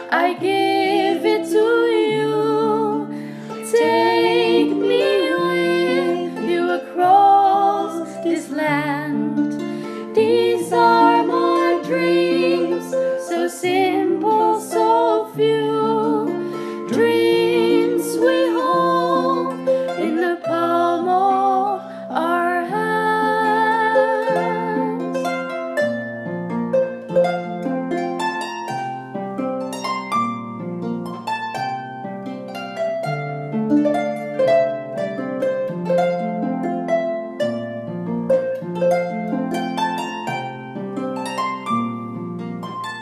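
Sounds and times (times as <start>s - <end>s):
women singing: 0.0s - 25.1s
harp playing: 0.0s - 43.0s.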